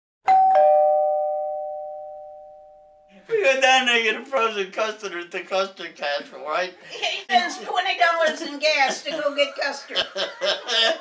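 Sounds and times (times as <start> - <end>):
ding-dong doorbell chime: 0.2 - 3.1.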